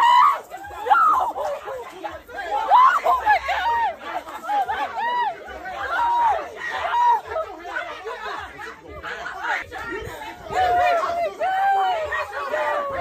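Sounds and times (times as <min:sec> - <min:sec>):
people talking over one another: 0:00.0 - 0:13.0.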